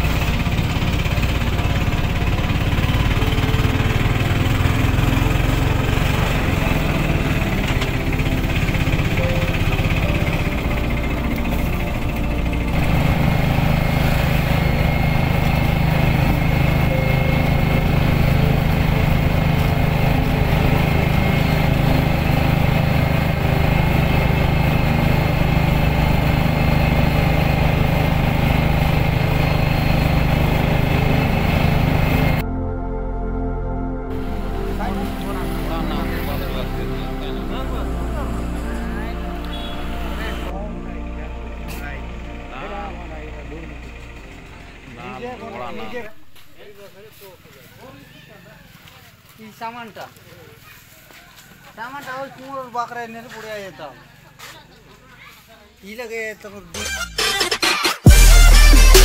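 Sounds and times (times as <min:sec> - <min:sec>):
motor engine running: 0:00.0 - 0:51.6, 0:56.7 - 0:59.0.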